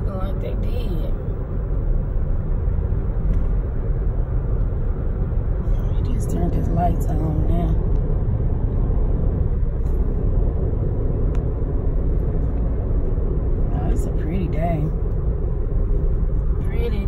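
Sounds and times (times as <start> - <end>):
car cabin road noise: 0.0 - 17.0.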